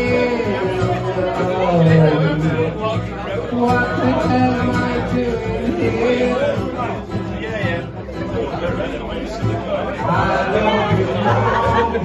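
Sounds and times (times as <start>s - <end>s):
acoustic guitar: 0.0s - 12.0s
audience chatter: 0.0s - 12.0s
man singing into a microphone: 0.0s - 12.0s.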